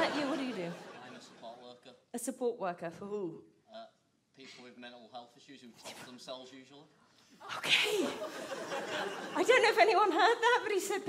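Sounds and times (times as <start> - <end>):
room hubbub: 7.5 - 11.0.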